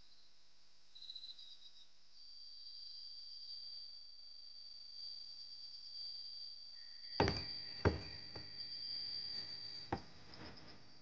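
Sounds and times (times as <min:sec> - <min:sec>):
heavy footsteps on wooden planks: 0:07.2 - 0:08.5.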